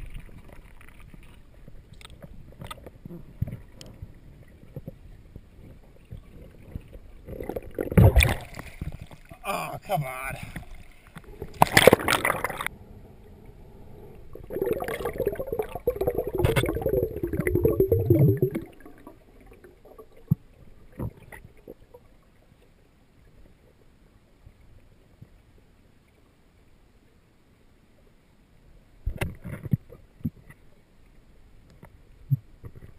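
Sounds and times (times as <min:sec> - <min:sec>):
water splashing against camera: 0:00.0 - 0:12.7, 0:14.2 - 0:22.0
underwater gurgling and bubbling: 0:02.4 - 0:09.4, 0:10.6 - 0:22.3
underwater hush: 0:10.6 - 0:20.4.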